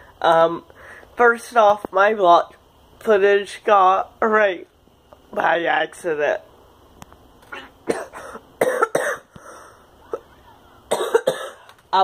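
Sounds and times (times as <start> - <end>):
man coughing: 7.6 - 9.3, 10.9 - 11.6.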